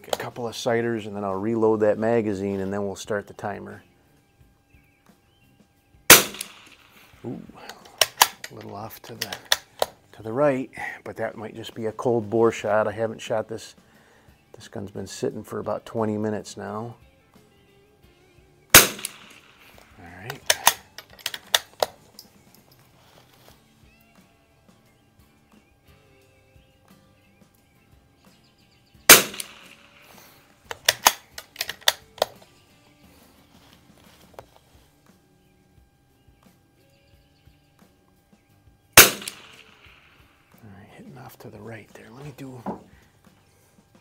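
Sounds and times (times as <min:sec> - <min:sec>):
metallic clicks of rifle bolt: 0:06.1 - 0:06.8, 0:07.6 - 0:10.0, 0:18.7 - 0:22.8, 0:29.1 - 0:30.0, 0:30.7 - 0:32.5, 0:39.0 - 0:39.8
rifle shots: 0:06.1 - 0:07.0, 0:18.7 - 0:19.8, 0:29.1 - 0:32.0, 0:39.0 - 0:40.1.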